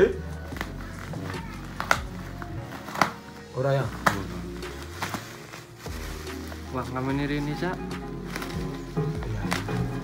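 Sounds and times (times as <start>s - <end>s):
background music: 0.0s - 10.0s
scissors snipping bubble wrap: 0.4s - 6.9s, 7.6s - 10.0s.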